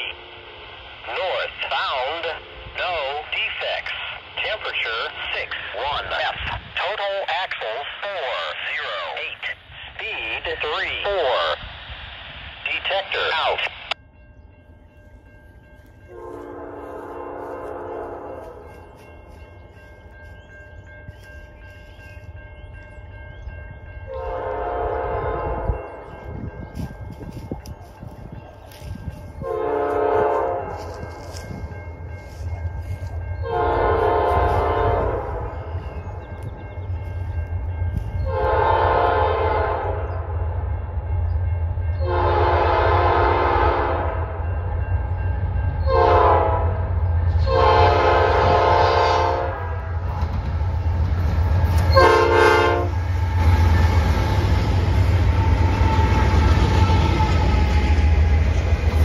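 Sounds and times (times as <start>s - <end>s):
train engine rumble: 0.0s - 59.0s
train wheels on rails: 14.8s - 43.6s, 44.4s - 59.0s
train air horn blasts: 16.1s - 18.8s, 24.1s - 26.0s, 28.7s - 31.5s, 32.3s - 35.7s, 38.2s - 40.0s, 42.0s - 44.4s, 45.8s - 50.1s, 51.8s - 58.1s.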